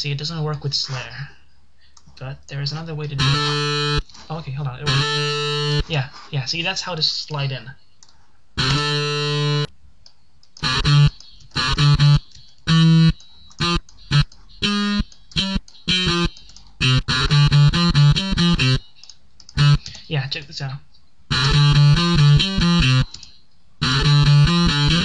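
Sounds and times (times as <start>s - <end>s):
distorted palm-muted guitar chugs: 3.0s - 4.1s, 4.8s - 5.9s, 8.6s - 9.7s, 10.6s - 18.8s, 19.5s - 20.0s, 21.3s - 23.2s, 23.8s - 25.0s.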